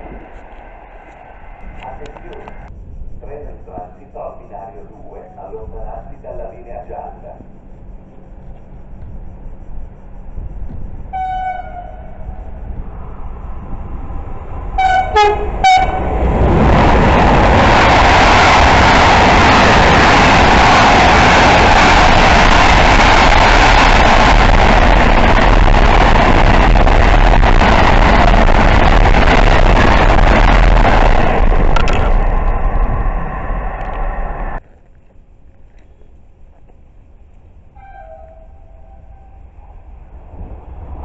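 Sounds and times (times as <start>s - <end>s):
freight train passing at speed: 0.0s - 34.6s, 36.3s - 41.0s
train horn: 11.1s - 12.4s, 14.8s - 16.2s, 37.8s - 39.6s.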